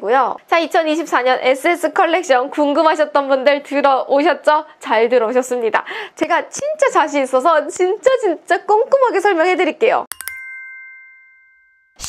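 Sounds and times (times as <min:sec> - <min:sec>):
bright chime ding: 0:10.1 - 0:12.0.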